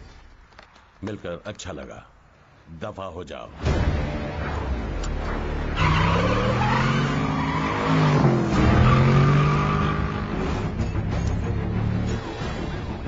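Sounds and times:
engines revving: 0:03.7 - 0:13.0
tires skidding: 0:04.0 - 0:11.0.

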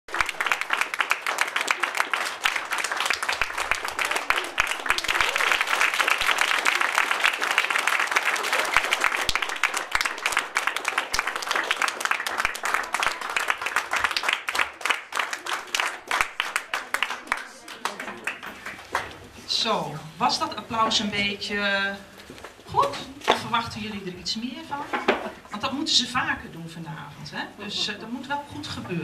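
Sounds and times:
audience applauding: 0:00.0 - 0:19.3.

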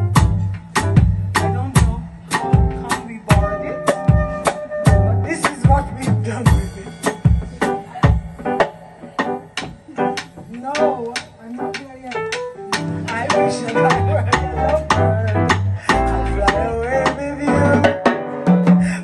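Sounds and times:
drum ticks: 0:00.0 - 0:08.6, 0:09.2 - 0:18.2
walking bass line: 0:00.0 - 0:08.6, 0:09.4 - 0:18.0
piano notes: 0:00.0 - 0:19.0.

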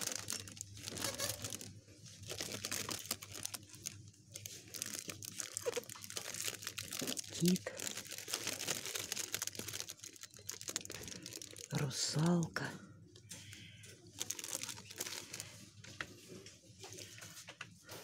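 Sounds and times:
plastic packaging crinkling: 0:00.0 - 0:12.4, 0:13.2 - 0:16.2.

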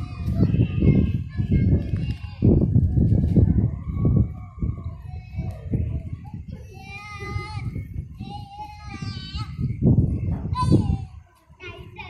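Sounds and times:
young children calling out: 0:04.9 - 0:09.8, 0:10.5 - 0:12.0.

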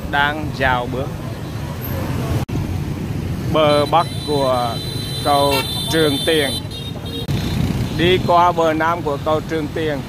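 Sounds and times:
low rumble of traffic: 0:00.0 - 0:10.0.

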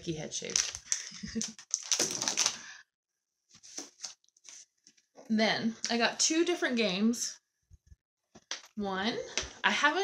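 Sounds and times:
plastic bag crinkling: 0:00.4 - 0:02.8.

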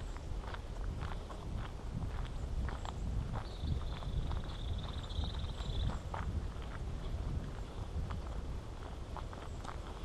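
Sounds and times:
footsteps on asphalt: 0:00.0 - 0:10.0.

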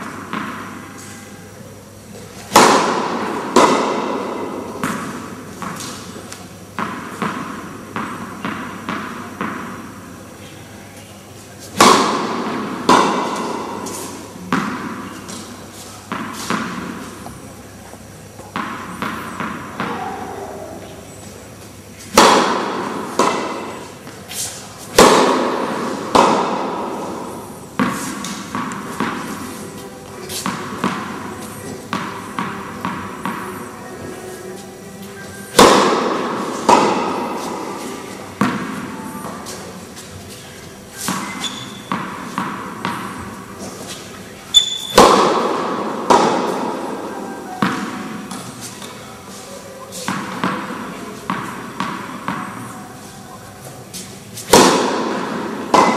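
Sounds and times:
tennis ball bouncing: 0:00.0 - 0:01.1, 0:02.1 - 0:10.0, 0:11.6 - 0:21.3, 0:22.0 - 0:34.2, 0:35.5 - 0:40.1, 0:41.0 - 0:49.0, 0:50.0 - 0:53.1, 0:53.9 - 0:55.9
racket hitting tennis ball: 0:00.0 - 0:01.2, 0:02.1 - 0:10.2, 0:11.6 - 0:21.4, 0:22.0 - 0:55.9.

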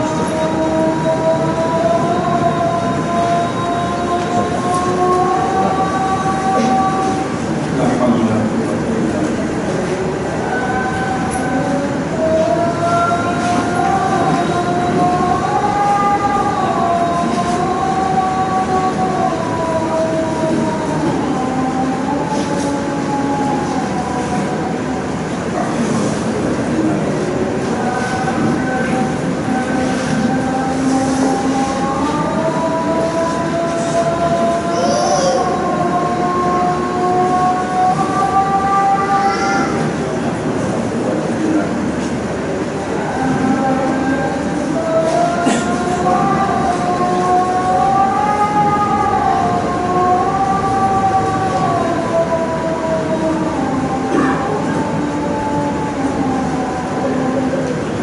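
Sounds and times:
steady background hiss: 0:00.0 - 0:58.0.

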